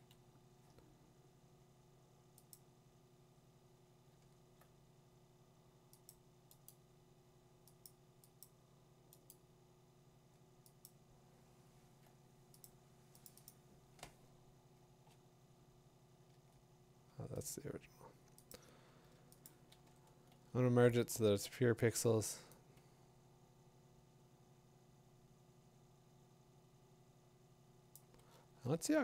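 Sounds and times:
low room hum: 0.0 - 29.0
computer mouse clicks: 2.3 - 2.7, 5.9 - 6.8, 7.6 - 9.4, 10.6 - 11.0, 12.0 - 14.1, 18.3 - 20.4.

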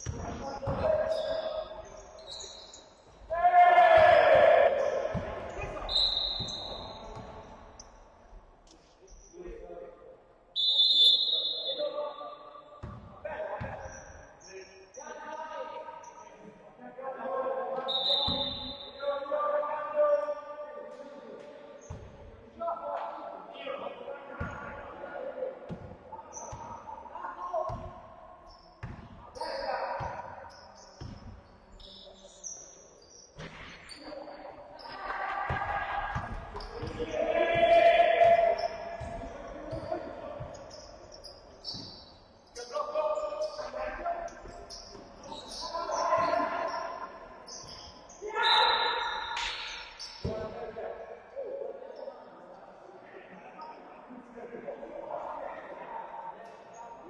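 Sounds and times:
players shouting in hall: 3.2 - 7.1, 34.8 - 39.3.

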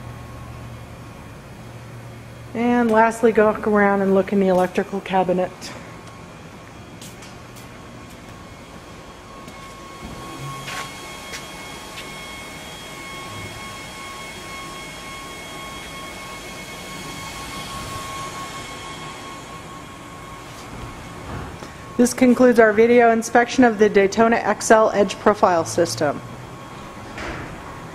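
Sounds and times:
shop machinery whirring: 0.0 - 27.9
thin high whine: 0.0 - 27.9.

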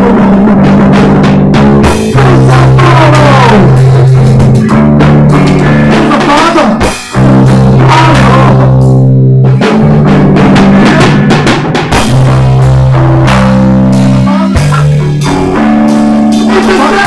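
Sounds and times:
drum kit beats: 0.0 - 17.0
electric bass guitar: 0.0 - 17.0.

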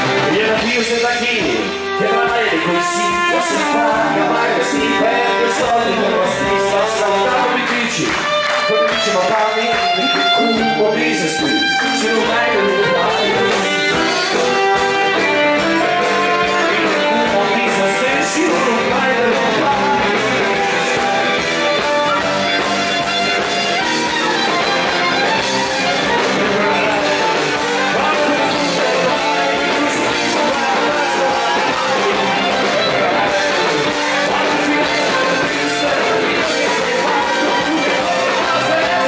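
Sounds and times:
folk dance band playing: 0.0 - 39.0.

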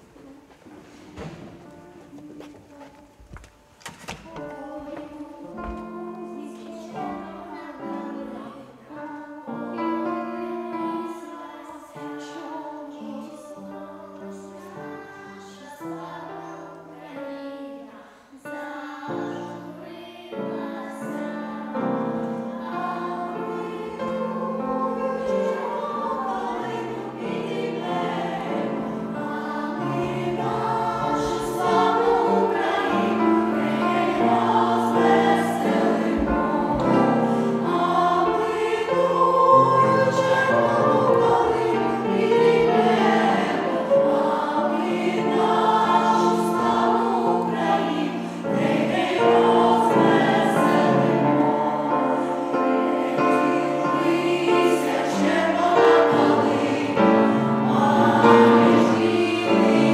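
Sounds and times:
choir of women and children singing: 0.0 - 59.9.

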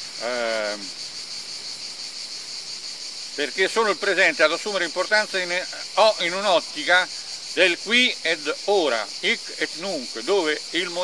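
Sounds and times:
insects shrilling: 0.0 - 11.0.

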